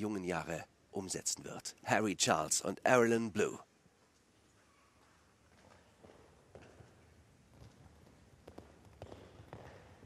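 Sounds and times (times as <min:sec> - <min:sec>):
horse hoofbeats on sand: 0:05.6 - 0:10.0.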